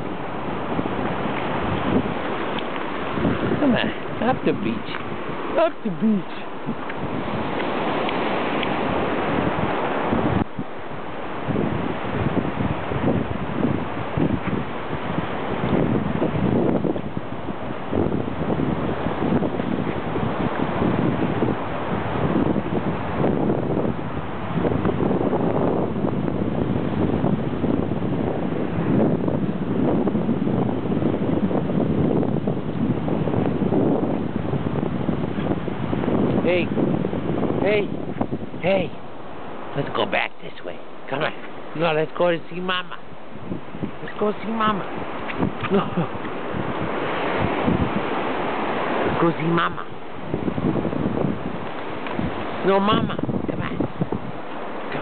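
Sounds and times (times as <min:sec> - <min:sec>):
ocean surf: 0:00.0 - 0:55.0
wind blowing across microphone: 0:00.0 - 0:55.0.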